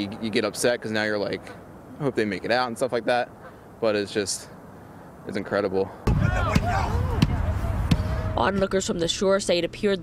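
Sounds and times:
distant people shouting and screaming: 6.0 - 8.7.

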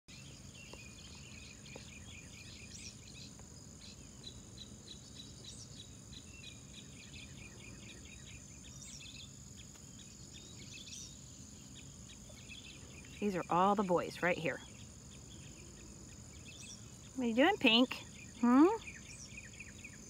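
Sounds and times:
high-pitched insect whine: 0.1 - 20.0
insects chirping: 0.1 - 20.0.

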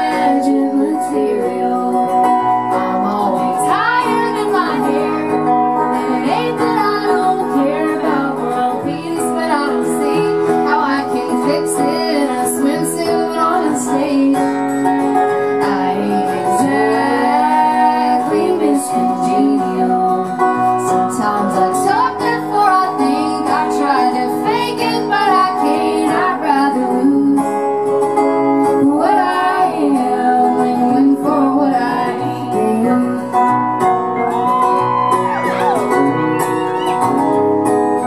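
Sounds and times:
acoustic guitars strummed and picked: 0.0 - 38.0.

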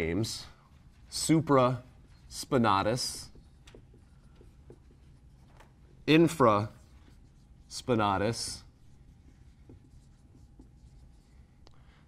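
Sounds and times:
marker writing on whiteboard: 0.0 - 11.7.

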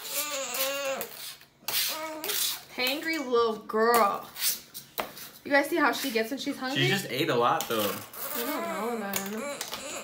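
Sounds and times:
infant whining: 0.0 - 2.7, 8.1 - 10.0.

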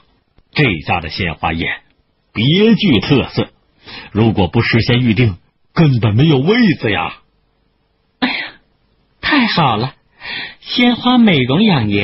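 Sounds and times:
faint steady hum: 0.0 - 12.0
man coughing: 8.2 - 8.6.

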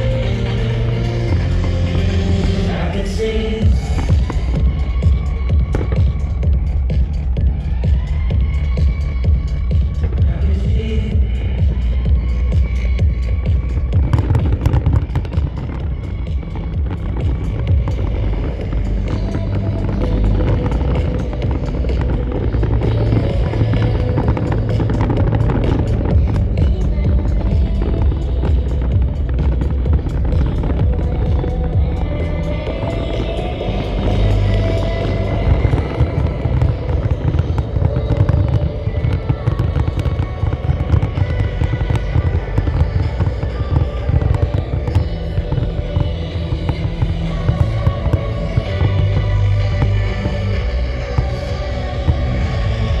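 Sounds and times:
dance music with heavy bass: 0.0 - 53.0
fireworks bursting and crackling: 0.0 - 53.0.

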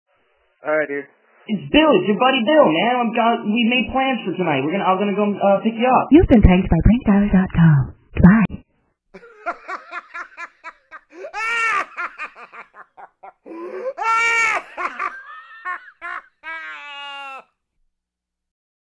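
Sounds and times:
person laughing: 9.2 - 17.4.

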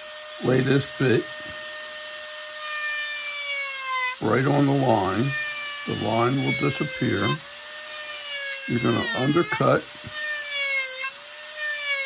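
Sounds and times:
rotary tool grinding wood: 0.0 - 12.0.

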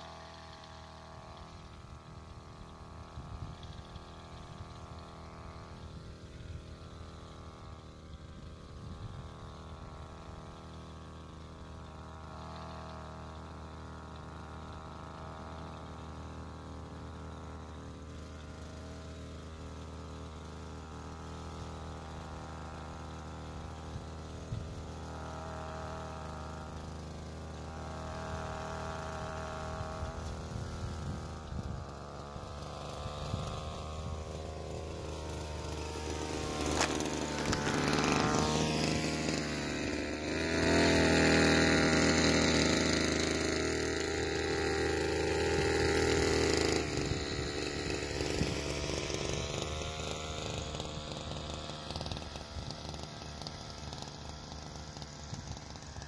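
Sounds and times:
small two-stroke engine running: 0.0 - 56.0.

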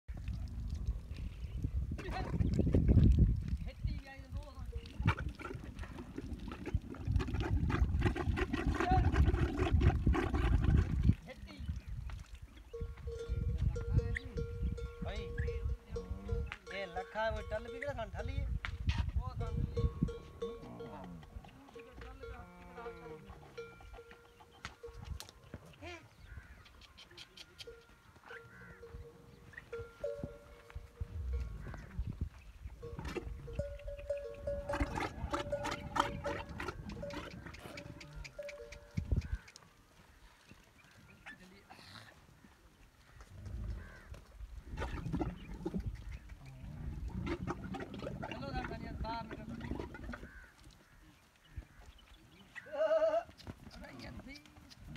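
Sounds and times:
camel gurgling and rumbling: 0.1 - 3.8, 4.5 - 17.8, 19.7 - 39.6, 43.1 - 54.9.

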